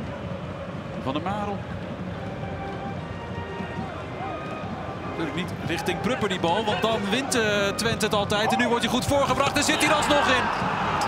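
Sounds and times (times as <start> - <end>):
stadium background noise: 0.0 - 11.0
commentator's voice: 5.3 - 10.5.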